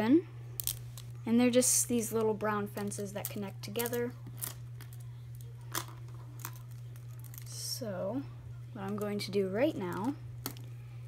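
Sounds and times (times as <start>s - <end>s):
steady low hum: 0.0s - 11.0s
plastic wrapping rustling: 2.7s - 7.6s.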